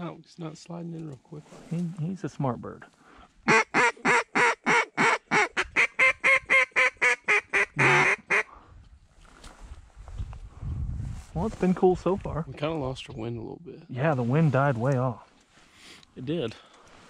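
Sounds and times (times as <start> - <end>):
duck call quacks: 3.4 - 8.5.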